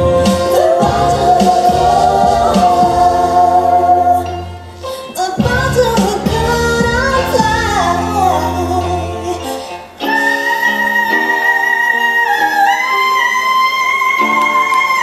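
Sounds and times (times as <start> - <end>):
woman singing: 0.0 - 4.4, 5.0 - 15.0
instrumental backing: 0.0 - 15.0.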